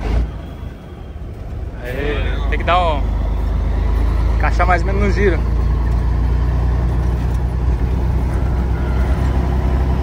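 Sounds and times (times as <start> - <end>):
truck diesel engine: 0.0 - 10.0.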